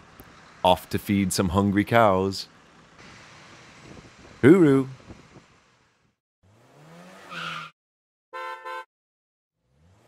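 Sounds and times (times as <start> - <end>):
faint outdoor background: 0.0 - 8.9
car engine revving: 6.4 - 7.7, 9.6 - 10.0.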